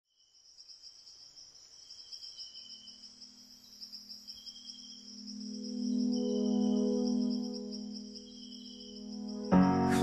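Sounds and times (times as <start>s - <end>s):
insects trilling: 0.1s - 10.0s
low musical drone: 5.4s - 10.0s.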